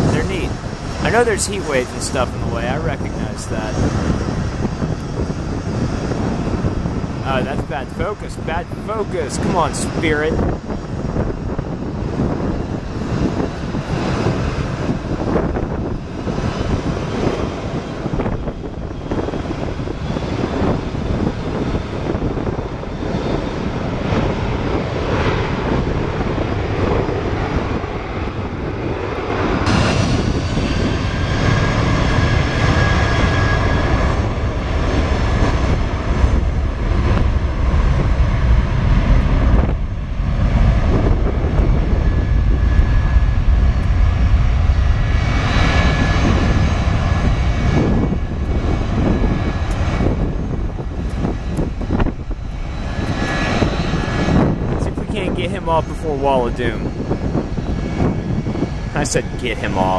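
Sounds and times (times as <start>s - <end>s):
high jet engine whine: 0.0s - 59.9s
jet engines rumbling: 0.0s - 59.9s.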